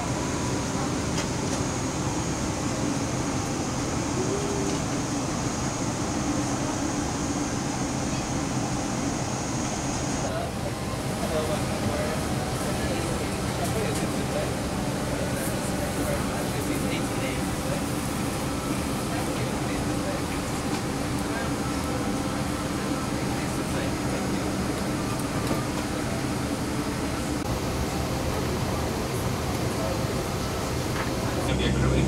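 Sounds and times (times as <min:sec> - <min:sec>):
indistinct passenger voices: 0:00.0 - 0:32.0.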